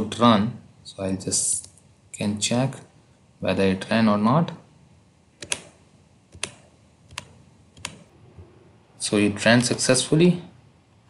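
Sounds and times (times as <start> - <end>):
computer mouse clicks: 5.4 - 8.1.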